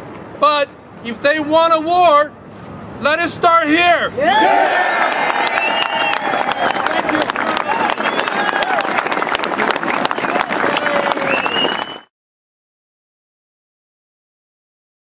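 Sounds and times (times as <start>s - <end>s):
crowd shouting and whooping: 4.2s - 12.0s
crowd clapping: 4.4s - 12.1s.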